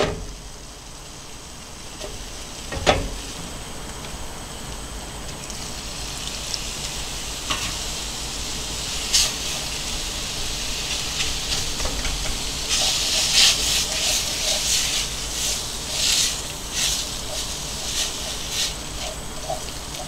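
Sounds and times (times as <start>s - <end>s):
roux sizzling in a pan: 0.1s - 20.0s
whisk scraping pan: 9.1s - 20.0s
whisk clicking against pan: 10.9s - 20.0s.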